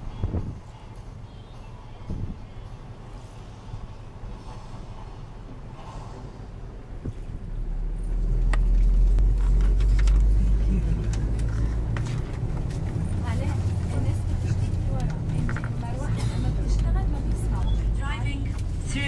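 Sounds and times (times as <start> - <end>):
bus engine and road rumble: 0.0 - 19.0
passengers talking: 9.5 - 19.0.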